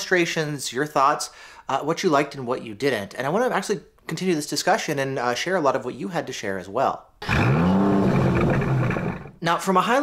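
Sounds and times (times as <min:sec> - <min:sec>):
car engine revving: 0:07.2 - 0:09.4.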